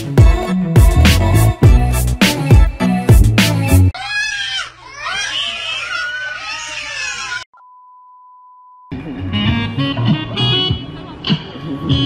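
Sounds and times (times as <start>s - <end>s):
children shrieking and yelling: 4.0s - 7.5s.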